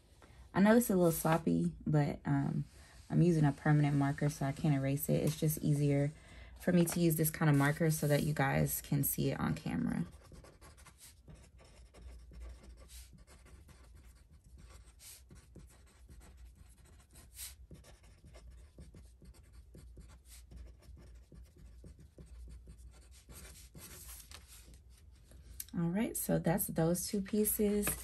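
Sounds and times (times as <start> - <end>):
marker scratching on paper: 6.7 - 8.7, 9.4 - 25.2.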